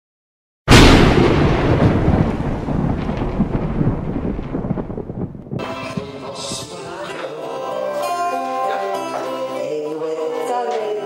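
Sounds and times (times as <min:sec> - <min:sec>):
loud crash: 0:00.7 - 0:06.7
low rumble: 0:00.7 - 0:06.7.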